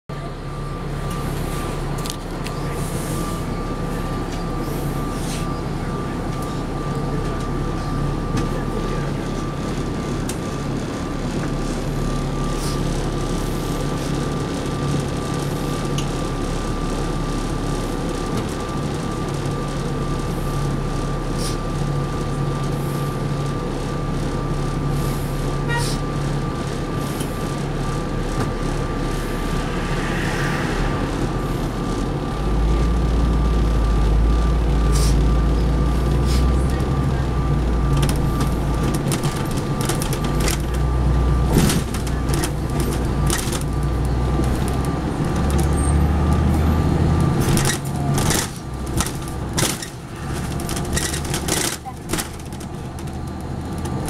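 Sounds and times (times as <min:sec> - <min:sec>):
bus diesel engine idling: 0:00.1 - 0:54.0
high whine: 0:24.0 - 0:41.6.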